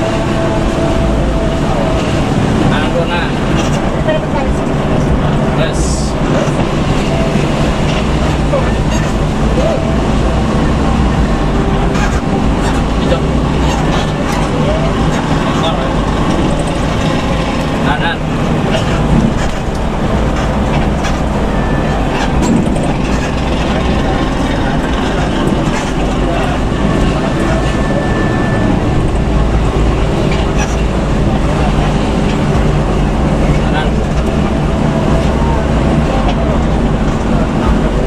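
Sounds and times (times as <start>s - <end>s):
bus engine drone: 0.0s - 38.0s
road and tyre noise: 0.0s - 38.0s.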